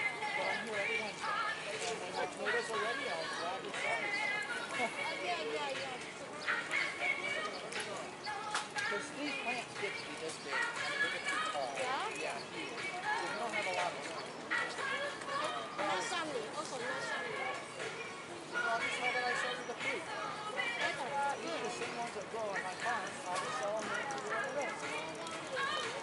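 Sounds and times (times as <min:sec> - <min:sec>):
chatter of passersby: 0:00.0 - 0:26.0
footsteps on pavement: 0:00.0 - 0:26.0
people talking: 0:00.0 - 0:26.0.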